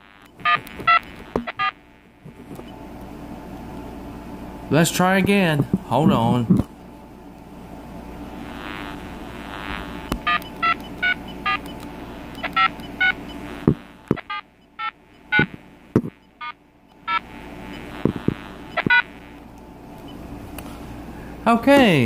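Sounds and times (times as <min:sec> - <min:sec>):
steady telephone tone: 0:08.3 - 0:19.4
telephone keypad beeps: 0:10.2 - 0:11.8.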